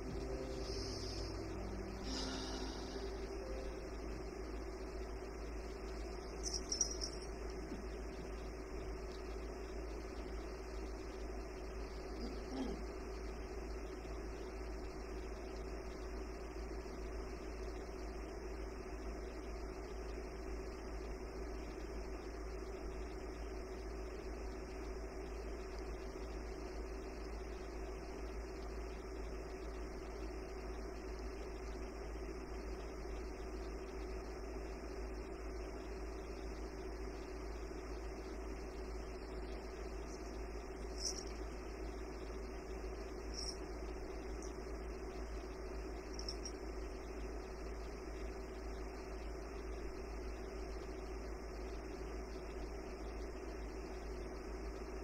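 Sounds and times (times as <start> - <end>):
low hum and hiss: 0.0 - 55.0.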